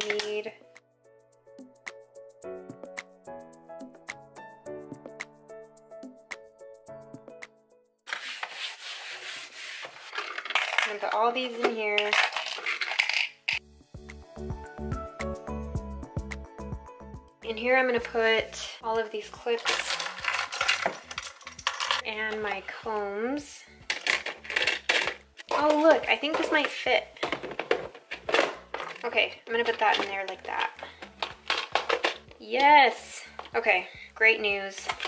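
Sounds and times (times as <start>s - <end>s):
plastic clips clattering in a box: 0.0s - 0.5s, 10.0s - 13.6s, 19.6s - 22.5s, 23.8s - 33.6s, 34.7s - 35.0s
background music with a beat: 0.7s - 7.6s, 13.6s - 17.4s.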